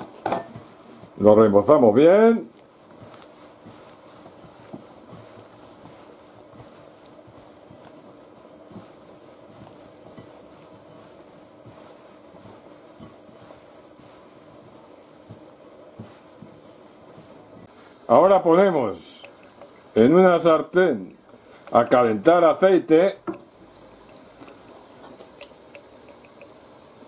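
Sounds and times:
hands rustling food in flour: 0.0s - 27.0s
low background hum: 0.0s - 27.0s.

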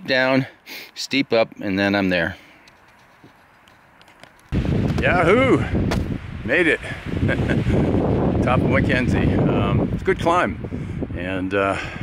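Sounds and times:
wind rumble on microphone: 4.5s - 12.0s
man shouting: 5.0s - 5.6s.

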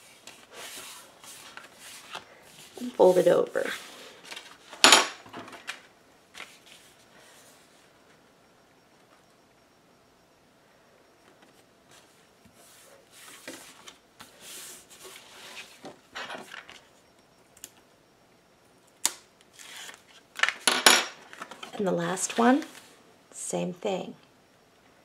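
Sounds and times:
paper rustling and rubbing: 0.0s - 4.7s, 19.5s - 20.2s.

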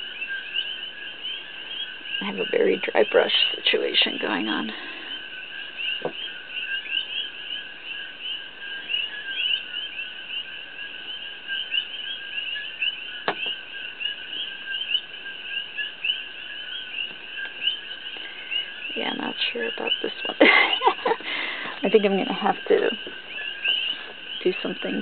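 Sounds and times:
chorus of rapid high chirps: 0.0s - 25.0s
constant high hum: 0.0s - 25.0s.

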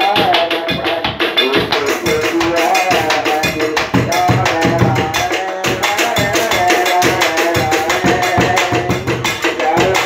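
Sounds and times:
drum and percussion beating: 0.0s - 10.0s
singing through horn loudspeaker: 0.0s - 10.0s.

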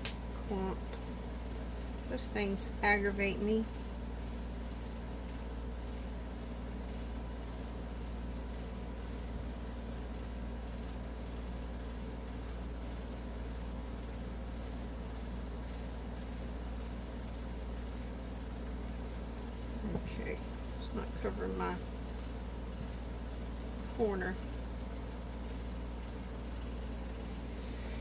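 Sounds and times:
low background hum: 0.0s - 28.0s.

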